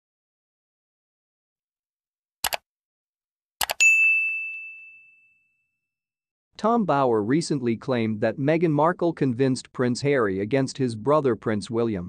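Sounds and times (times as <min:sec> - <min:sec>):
bright bell ding: 0:03.8 - 0:05.7.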